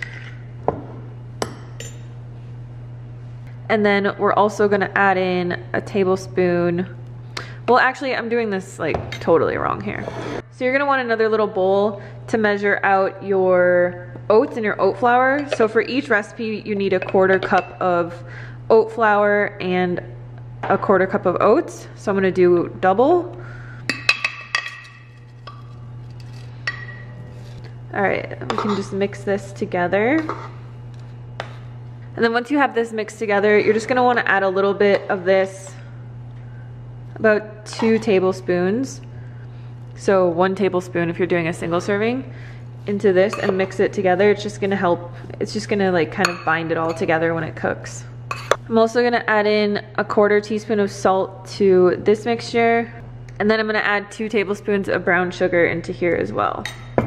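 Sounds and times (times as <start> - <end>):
low steady hum: 0.0 - 57.0
metal spoon in bowl: 17.0 - 17.8, 28.5 - 29.0, 43.3 - 43.8, 46.2 - 47.1, 48.3 - 48.6
metal spoon clinking on bowl: 43.3 - 43.7, 46.2 - 47.1, 48.3 - 48.6.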